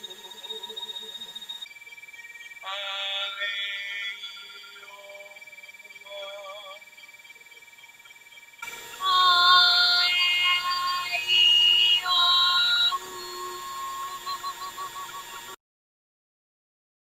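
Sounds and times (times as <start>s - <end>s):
person singing sustained vowels: 2.6s - 5.4s, 9.0s - 14.8s.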